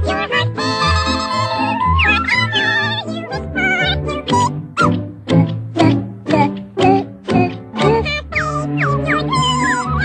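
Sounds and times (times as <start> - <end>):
orchestral cartoon music: 0.0 - 10.0.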